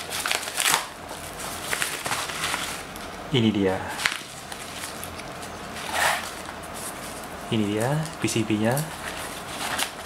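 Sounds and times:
plastic wrapping rustling: 0.0s - 3.1s, 3.9s - 10.0s.

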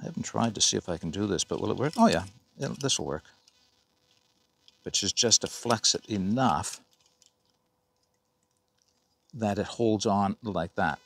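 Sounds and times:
faint steady hum: 0.0s - 11.0s
faint clicks: 6.8s - 9.4s.

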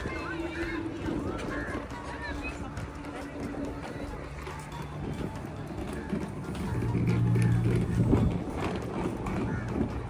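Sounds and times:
footsteps on stone paving: 0.0s - 10.0s
indistinct voices: 0.0s - 10.0s.

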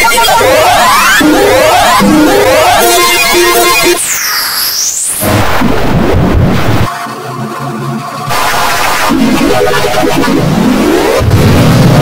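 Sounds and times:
cartoon sound effects: 0.0s - 4.0s
distorted cartoon music: 0.0s - 12.0s.

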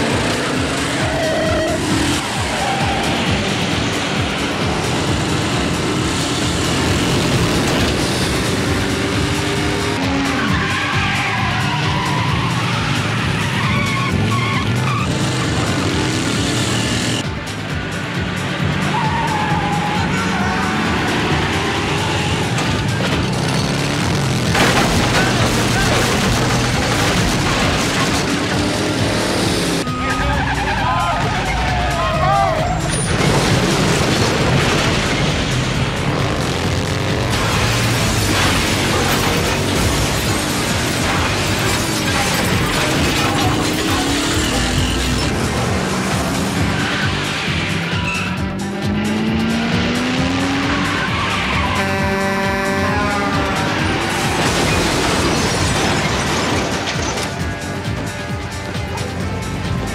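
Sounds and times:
tyres squealing: 0.0s - 3.6s, 5.8s - 17.2s, 18.8s - 48.6s, 50.4s - 58.0s
motorcycle engine revving: 0.0s - 19.0s, 19.7s - 30.7s, 32.6s - 55.7s
action music: 0.0s - 59.9s
car engine revving: 0.0s - 59.9s.

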